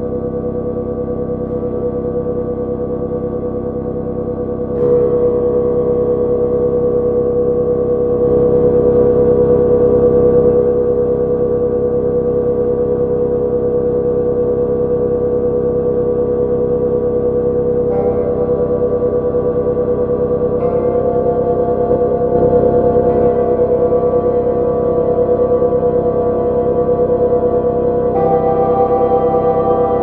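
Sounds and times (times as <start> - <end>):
bell-like synthesizer chords: 0.0 - 12.2, 15.8 - 30.0
low synth pulse: 0.0 - 30.0.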